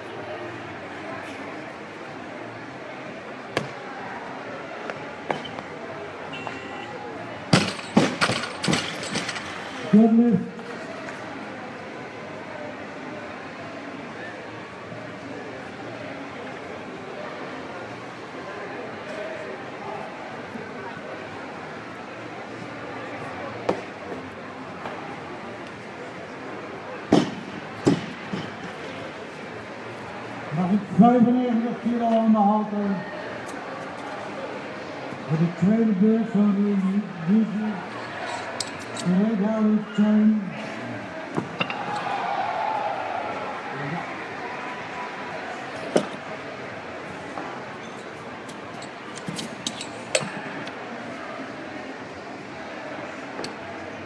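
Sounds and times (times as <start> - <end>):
murmur of hall: 0.0 - 54.0.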